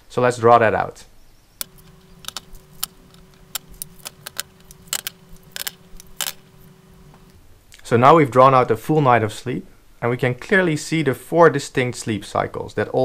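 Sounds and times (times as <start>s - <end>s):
faint hum: 1.6s - 7.5s.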